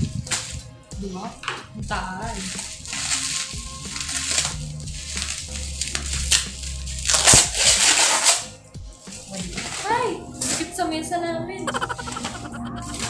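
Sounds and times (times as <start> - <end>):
bubble wrap crinkling: 0.0 - 0.7, 2.1 - 10.8.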